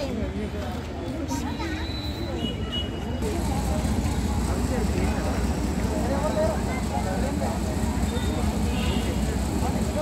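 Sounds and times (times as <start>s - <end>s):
heavy vehicle engine rumble: 3.1s - 10.0s.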